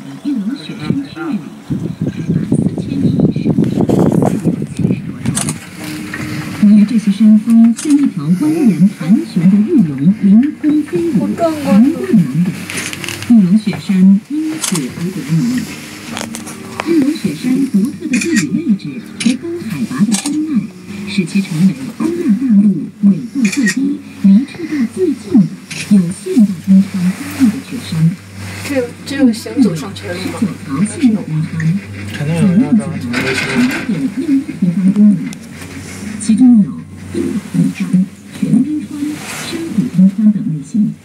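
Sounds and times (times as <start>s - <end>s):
muffled voices talking: 0.0s - 41.0s.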